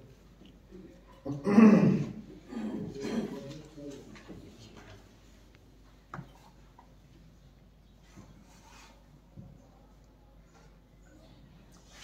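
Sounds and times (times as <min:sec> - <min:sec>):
man coughing: 0:01.4 - 0:03.5.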